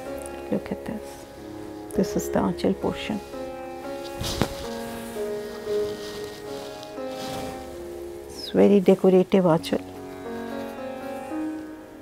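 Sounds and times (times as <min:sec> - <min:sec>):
sitar music over drone: 0:00.0 - 0:12.0.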